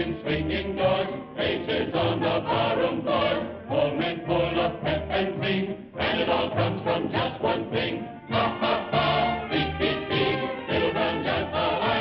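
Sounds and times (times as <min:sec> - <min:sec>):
chorus singing: 0:00.0 - 0:12.0
musical accompaniment: 0:00.0 - 0:12.0.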